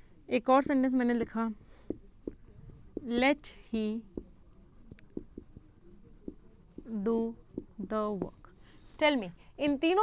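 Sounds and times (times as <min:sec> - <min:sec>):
marker writing on whiteboard: 0:00.4 - 0:08.8.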